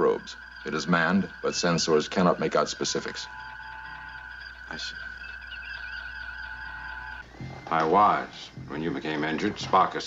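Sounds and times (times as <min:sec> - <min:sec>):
warbling computer chirp: 0:00.0 - 0:07.2
held high tones: 0:00.0 - 0:07.7
steady electronic hum: 0:00.0 - 0:09.3.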